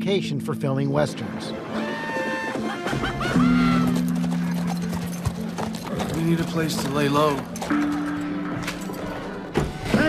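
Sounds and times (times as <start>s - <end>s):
horse whinnying: 1.7s - 4.3s
galloping hoofbeats: 2.6s - 8.2s.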